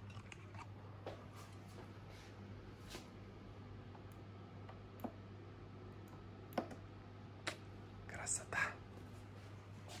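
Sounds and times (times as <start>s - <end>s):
person whispering: 8.1s - 8.9s.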